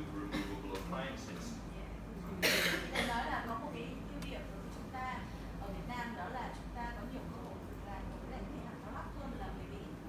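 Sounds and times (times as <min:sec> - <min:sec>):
low room hum: 0:00.0 - 0:10.0
person coughing: 0:00.3 - 0:00.6, 0:02.4 - 0:03.2.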